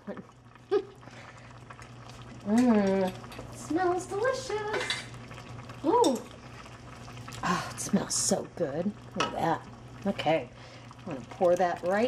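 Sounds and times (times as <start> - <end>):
woman laughing: 0.7 - 1.0.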